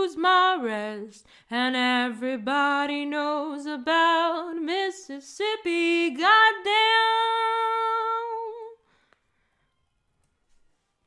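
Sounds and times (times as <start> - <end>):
woman singing unaccompanied: 0.0 - 8.8.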